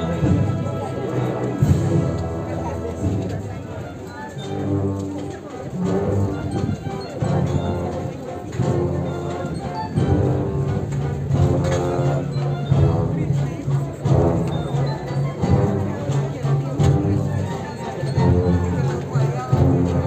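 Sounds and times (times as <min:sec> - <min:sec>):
brass band playing a march: 0:00.0 - 0:20.0
crowd murmur: 0:00.0 - 0:20.0.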